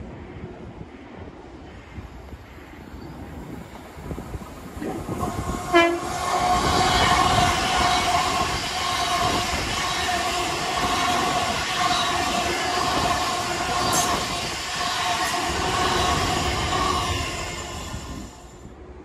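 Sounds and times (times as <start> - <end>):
train passing at speed: 0.0 - 19.0.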